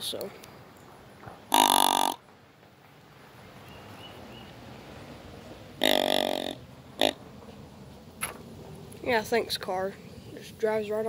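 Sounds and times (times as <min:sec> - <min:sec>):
buzzy deer grunt call: 0:01.5 - 0:02.2, 0:05.8 - 0:07.2.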